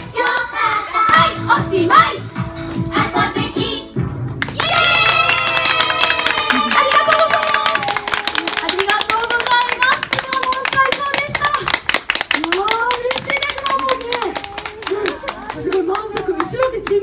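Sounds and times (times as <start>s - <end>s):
crowd clapping along: 4.3s - 17.0s.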